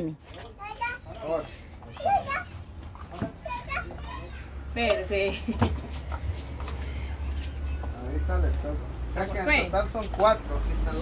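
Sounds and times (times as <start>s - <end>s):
young children chattering: 3.4s - 4.7s.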